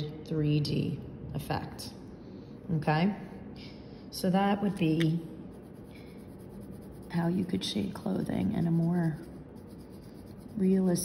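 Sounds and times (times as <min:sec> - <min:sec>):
pencil scratching on paper: 0:05.5 - 0:11.0.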